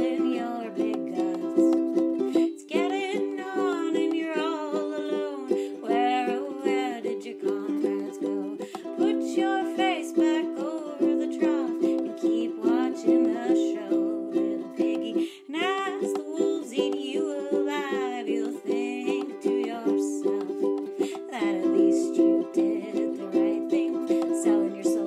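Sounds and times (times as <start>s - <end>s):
ukulele strumming: 0.0s - 25.0s
woman singing: 0.0s - 25.0s.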